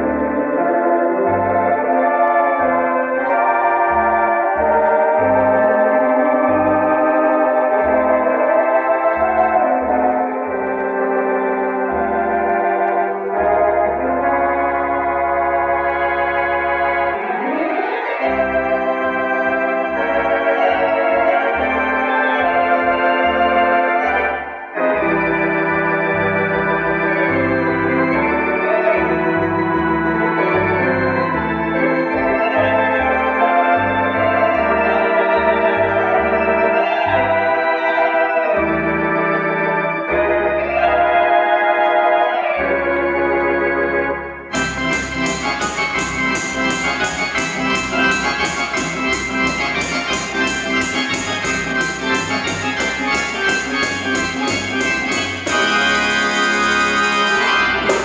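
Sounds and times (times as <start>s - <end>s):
electronic organ chords with vibrato: 0.0s - 58.0s
organ pedal bass notes: 0.0s - 58.0s.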